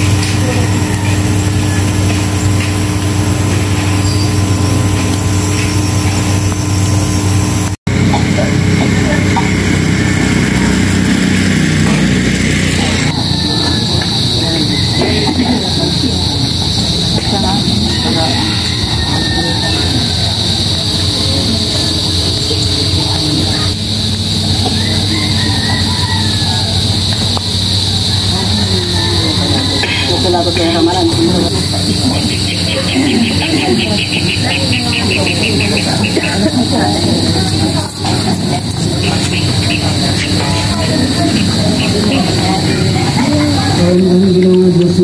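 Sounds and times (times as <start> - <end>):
low hum: 0.0 - 45.0
voices: 0.0 - 45.0.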